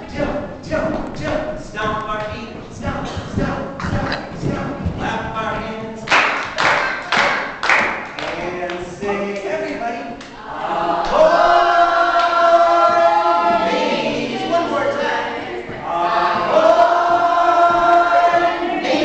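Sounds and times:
man and children singing: 0.0s - 19.0s.

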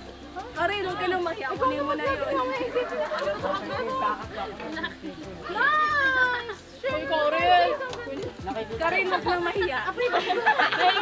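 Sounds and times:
group of people talking: 0.0s - 11.0s.

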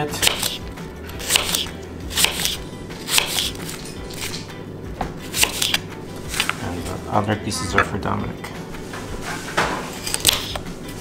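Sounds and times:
knife cutting apple on wooden board: 0.2s - 4.4s, 5.2s - 6.6s, 10.0s - 10.7s.

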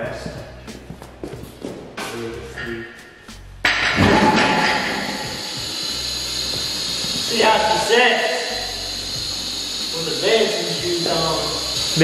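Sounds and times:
vehicle lift hissing: 4.0s - 12.0s.

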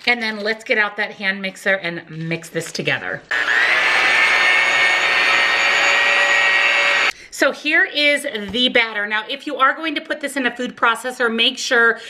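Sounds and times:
electric hand mixer running: 3.3s - 7.1s.

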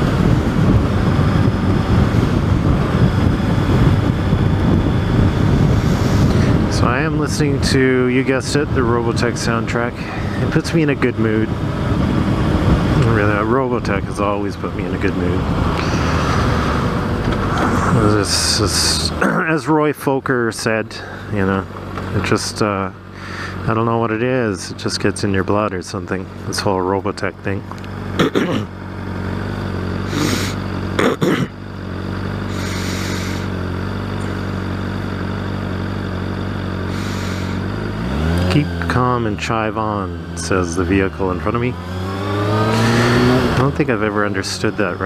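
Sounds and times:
motorcycle engine running: 0.0s - 45.0s
engine cough: 15.8s - 19.7s, 28.1s - 28.8s, 30.0s - 31.7s, 36.8s - 38.6s, 42.4s - 43.8s.

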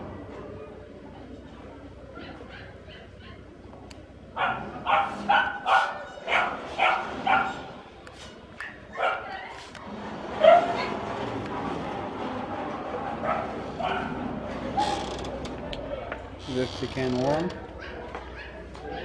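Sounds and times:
dog barking: 4.4s - 7.6s, 8.9s - 9.6s, 10.4s - 10.9s, 13.3s - 14.2s.

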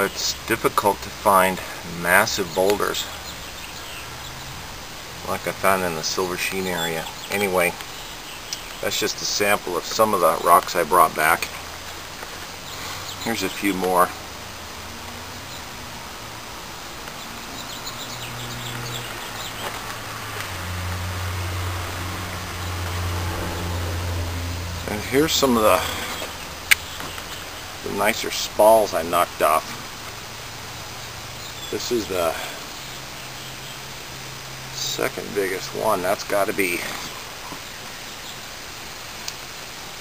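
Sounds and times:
outdoor background noise: 0.0s - 40.0s.

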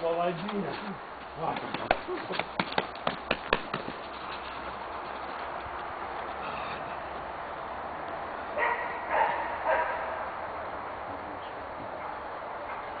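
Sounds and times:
dog barking: 8.6s - 10.2s, 12.0s - 13.0s.

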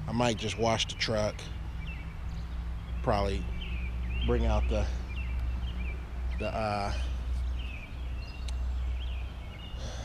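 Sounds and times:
low outdoor rumble: 0.0s - 10.0s
small birds chirping: 0.0s - 10.0s.

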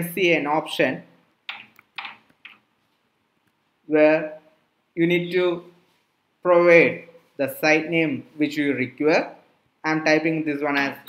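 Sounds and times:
faint keyboard keystrokes: 1.5s - 2.6s.

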